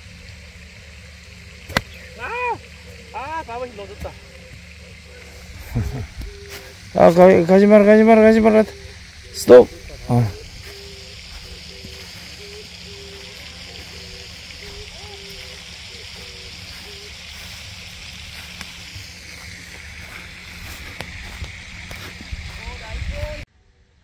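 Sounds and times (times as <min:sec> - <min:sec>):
distant voices: 0:00.0 - 0:23.4
high-pitched hiss: 0:00.0 - 0:24.0.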